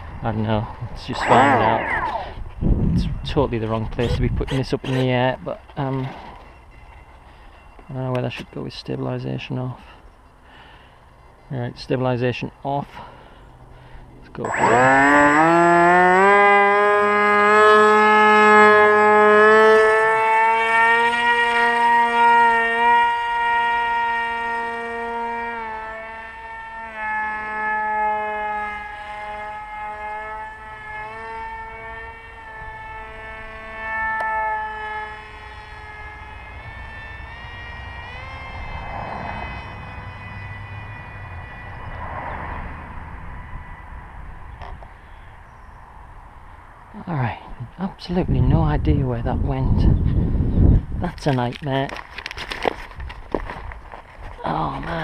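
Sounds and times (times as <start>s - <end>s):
electric motor and propeller whine: 0.0s - 11.8s, 12.9s - 46.9s, 48.0s - 55.0s.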